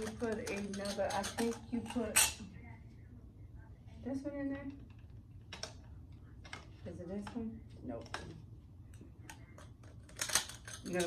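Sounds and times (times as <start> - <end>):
metal poles and plastic clicking: 0.0 - 2.4, 9.3 - 11.0.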